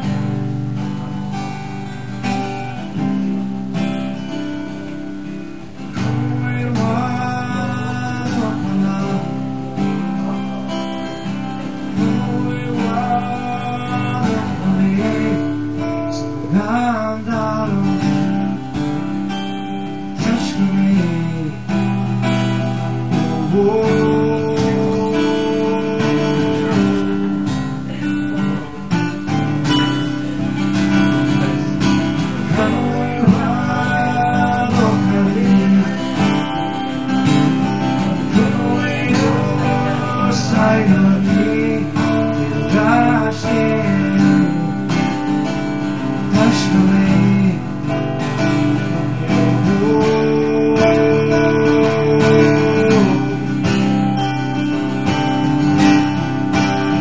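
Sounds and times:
acoustic guitars strumming chords: 0.0 - 57.0
picked guitar melody: 0.0 - 57.0.

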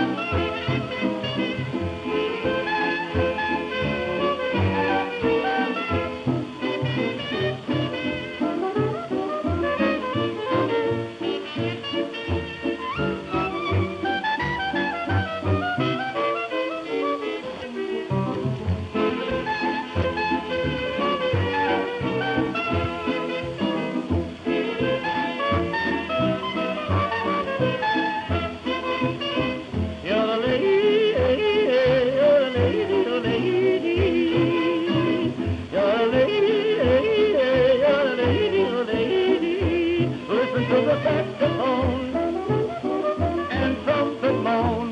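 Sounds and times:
jazz dance band on old record: 0.0 - 44.9.

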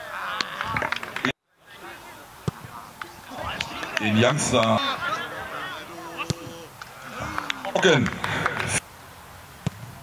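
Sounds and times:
open-air ambience: 0.0 - 10.0
people shouting: 3.1 - 8.0.

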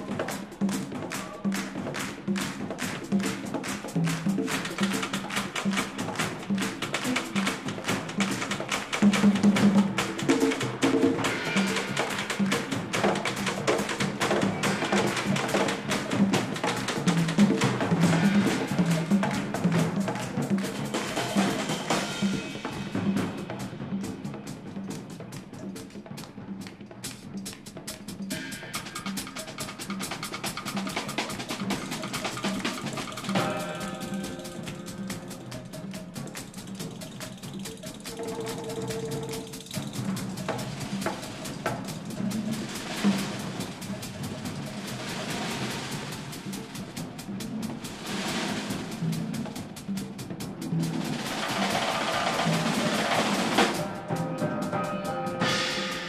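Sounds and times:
busy drum kit: 0.0 - 56.0
hand percussion: 0.0 - 56.0
sustained high notes: 33.3 - 37.1.

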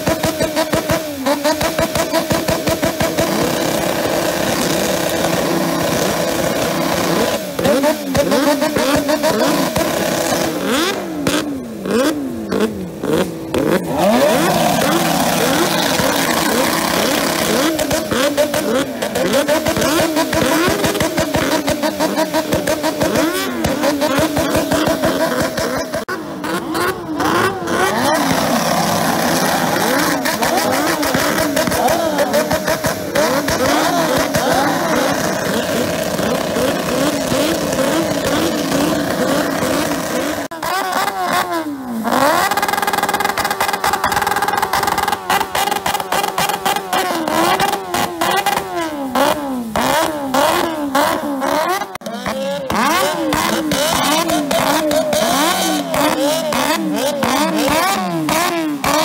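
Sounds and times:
motorcycle engines revving: 0.0 - 59.0.

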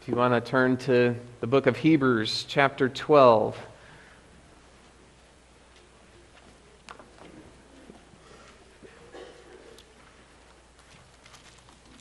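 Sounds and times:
book pages turning: 10.5 - 12.0.

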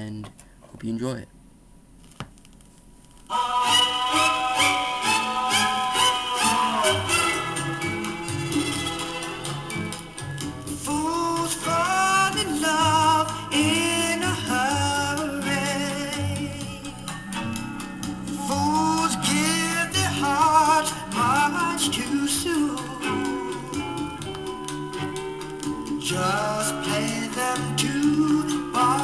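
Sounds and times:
person singing: 3.3 - 8.1, 10.8 - 17.0, 18.3 - 24.4, 26.0 - 29.0
rnb pop record playing: 3.3 - 29.0.

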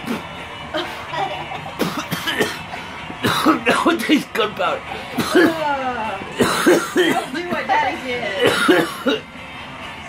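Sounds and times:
person coughing: 1.8 - 4.2, 5.2 - 5.8, 6.4 - 7.7, 8.4 - 9.3.

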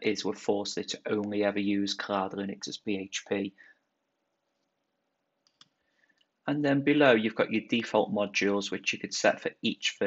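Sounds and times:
faint computer mouse clicks: 5.4 - 6.3.

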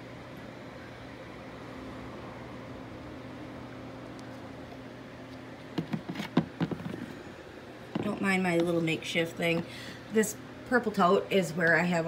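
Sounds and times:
low mechanical hum: 0.0 - 12.0
sharp knocks and clatters: 5.7 - 7.1.

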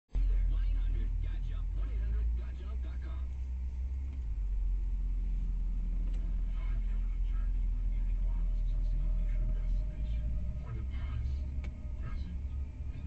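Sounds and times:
car engine and tyres: 0.1 - 13.0.

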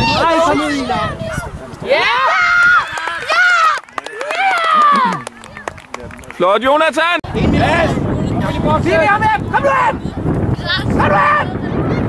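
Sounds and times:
children yelling: 0.0 - 5.6.

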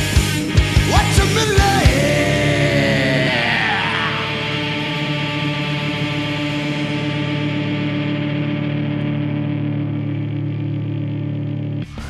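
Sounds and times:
ident music with rising sweep: 0.0 - 11.9
rock band chord ringing: 0.0 - 12.0.

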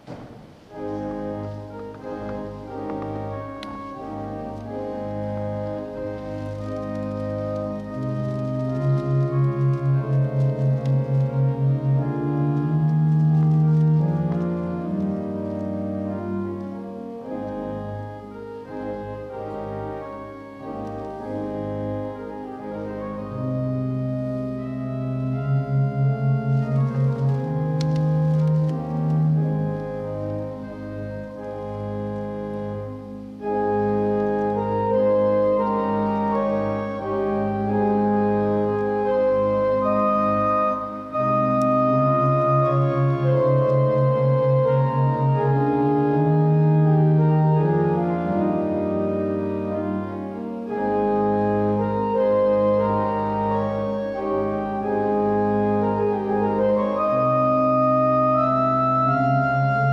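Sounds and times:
church organ playing: 0.0 - 59.9.

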